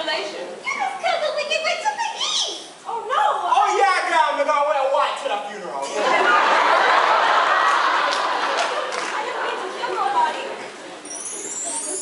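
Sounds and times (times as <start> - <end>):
indistinct chatter in a hall: 0.0 - 12.0.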